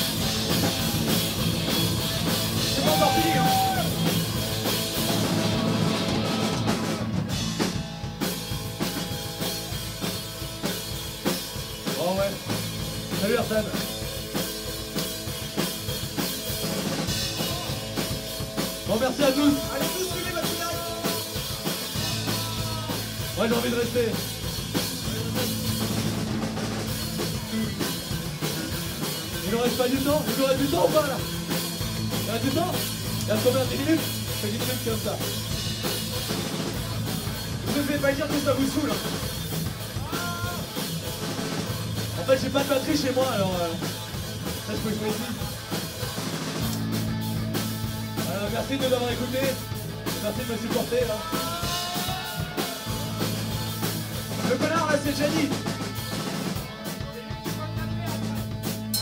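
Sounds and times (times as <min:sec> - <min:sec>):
bass guitar: 0:00.0 - 0:59.0
distorted electric guitars: 0:00.0 - 0:59.0
pounding drum kit: 0:00.0 - 0:59.0
person singing: 0:22.0 - 0:23.2, 0:51.2 - 0:53.9.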